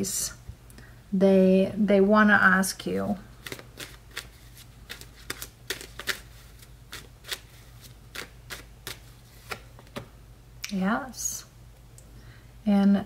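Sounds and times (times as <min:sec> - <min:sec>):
cards being shuffled: 0:03.4 - 0:10.1.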